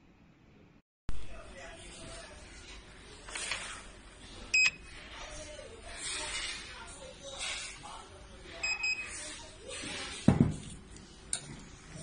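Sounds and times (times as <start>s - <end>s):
printer electronic beep: 4.6s - 4.8s, 8.6s - 9.1s.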